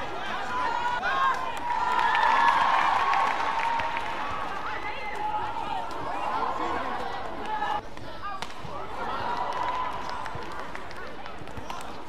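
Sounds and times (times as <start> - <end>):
crowd cheering and clapping: 0.0 - 7.8, 9.0 - 12.0.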